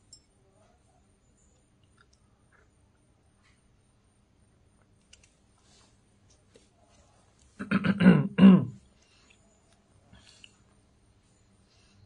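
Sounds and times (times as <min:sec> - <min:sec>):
man clearing his throat: 0:07.6 - 0:08.8.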